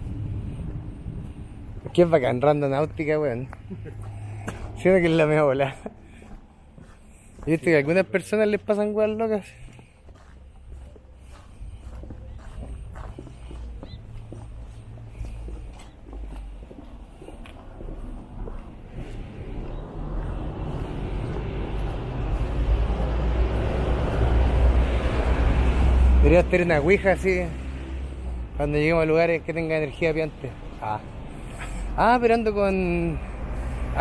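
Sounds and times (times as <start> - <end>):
low rumble: 0.0 - 2.6
car approaching: 0.0 - 34.0.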